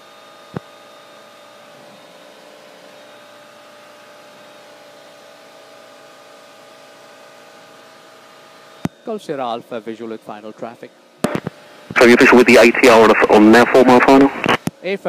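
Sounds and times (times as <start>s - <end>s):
faint steady tones: 11.3s - 14.6s
steady intercom hiss: 11.3s - 14.6s.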